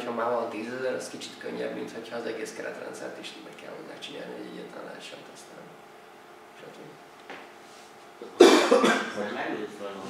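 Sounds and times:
person coughing: 0:08.2 - 0:09.2.

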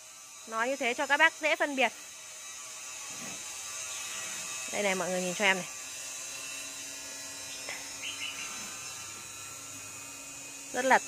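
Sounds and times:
small electric motor humming: 0:00.0 - 0:11.0.

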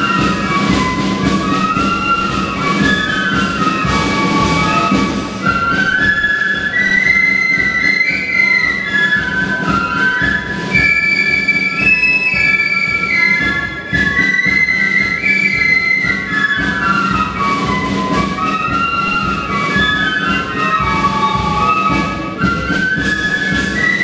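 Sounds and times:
drums keeping time: 0:00.0 - 0:24.0
flutes playing melody: 0:00.0 - 0:24.0.

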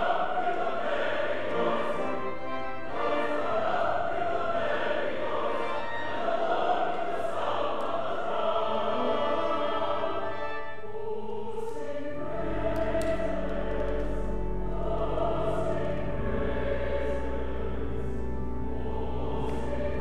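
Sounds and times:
pipe organ: 0:00.0 - 0:11.0, 0:12.0 - 0:20.0
choir singing: 0:00.0 - 0:20.0
organ pedal bass: 0:01.5 - 0:03.7, 0:12.2 - 0:20.0.

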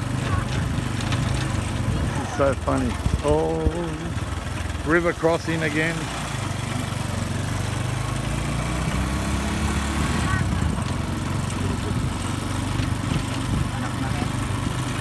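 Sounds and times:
motorcycle engine droning: 0:00.0 - 0:15.0.

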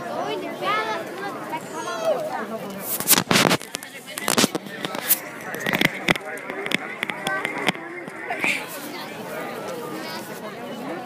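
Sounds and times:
crowd chatter: 0:00.0 - 0:11.0
sharp clicks and pops: 0:02.9 - 0:08.6.

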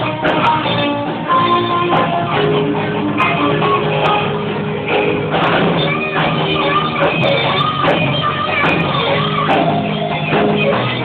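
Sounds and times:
drums: 0:00.0 - 0:11.0
electric guitar lead notes: 0:00.0 - 0:11.0
live rock band playing: 0:00.0 - 0:11.0.

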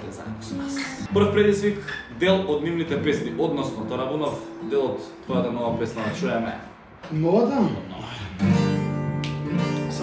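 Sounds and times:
acoustic guitar chord ringing: 0:00.5 - 0:06.7, 0:08.4 - 0:10.0.

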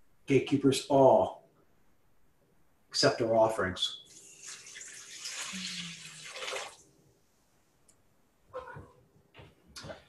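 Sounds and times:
liquid pouring into metal pot: 0:04.1 - 0:06.8.

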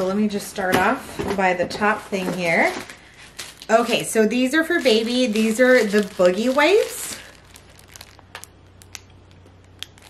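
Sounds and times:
plastic packs clicking: 0:02.7 - 0:10.0.

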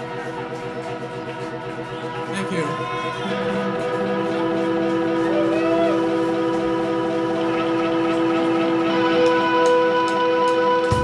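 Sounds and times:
electric guitars droning chord: 0:00.0 - 0:11.0.

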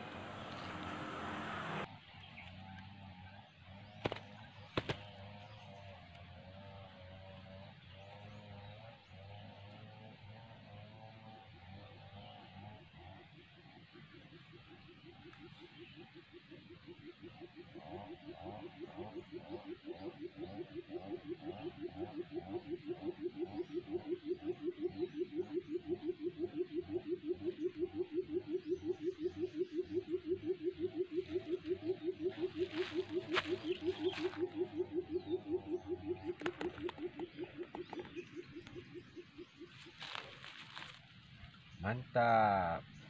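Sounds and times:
bird low booming hoots: 0:06.6 - 0:41.0.

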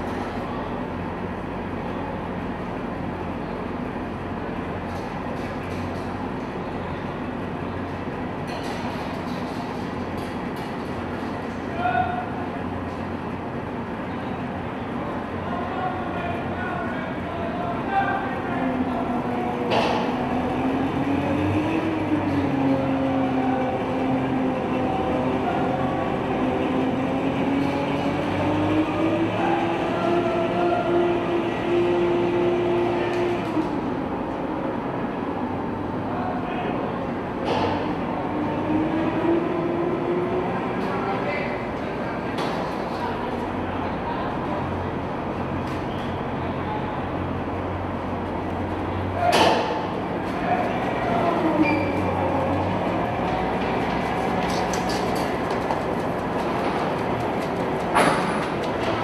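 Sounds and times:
diesel engine running: 0:09.5 - 0:36.1, 0:46.2 - 0:59.0
steel tracks clattering: 0:52.0 - 0:59.0.

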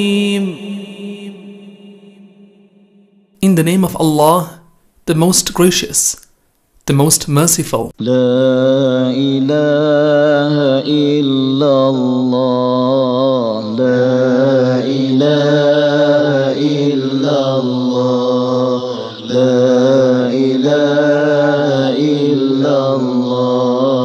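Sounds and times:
solo voice chanting: 0:00.0 - 0:06.2, 0:06.9 - 0:24.0.

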